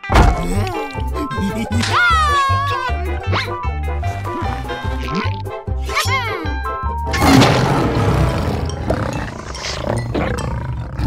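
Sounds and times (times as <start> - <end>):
cartoon lion roaring: 7.2 - 11.0.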